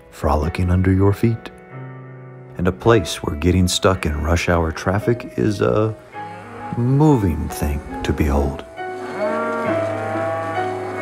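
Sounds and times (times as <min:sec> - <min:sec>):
background music: 0:00.0 - 0:11.0
cow mooing: 0:06.1 - 0:11.0.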